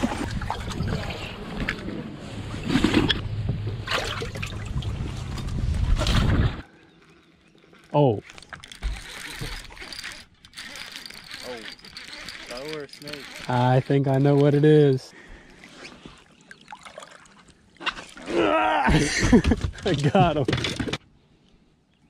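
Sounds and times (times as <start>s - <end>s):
water sloshing: 0.0s - 18.3s.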